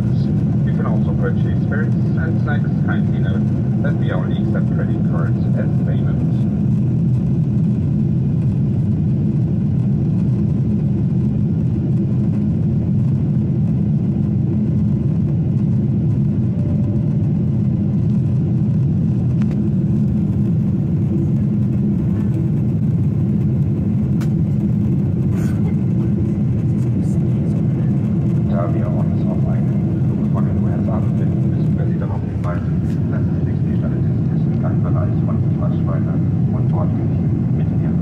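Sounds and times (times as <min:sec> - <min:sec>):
airplane cabin engine noise: 0:00.0 - 0:38.0.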